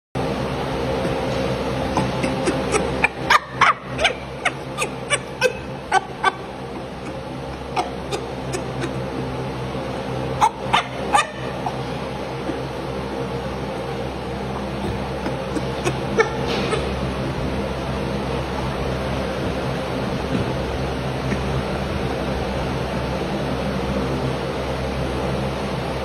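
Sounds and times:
chimpanzee food grunts: 0.2s - 24.1s
steady hum: 0.2s - 26.0s.

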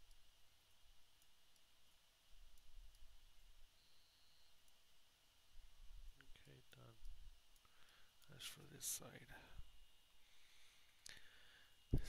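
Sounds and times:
faint clicks: 0.0s - 3.1s, 6.1s - 8.4s.

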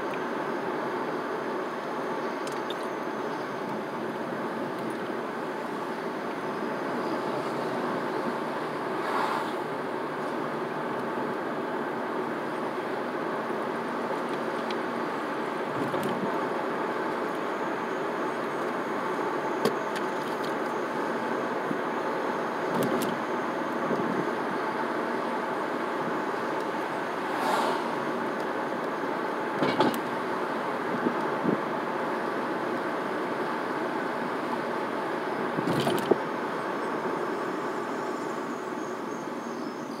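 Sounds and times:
car engine and road noise: 0.0s - 40.0s.

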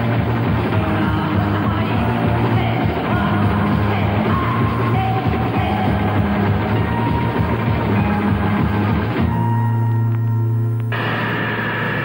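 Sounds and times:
garage rock band playing: 0.0s - 9.4s.

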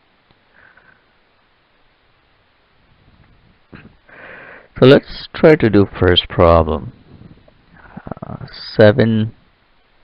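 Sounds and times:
faint steady hiss: 0.0s - 10.0s
person sniffing: 3.8s - 4.7s.

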